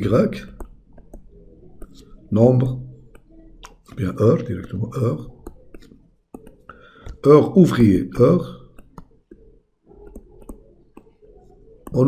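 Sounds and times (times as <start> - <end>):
faint low hum: 0.0 - 12.0
stylus tapping on tablet screen: 0.4 - 2.3, 2.9 - 7.3, 8.6 - 12.0.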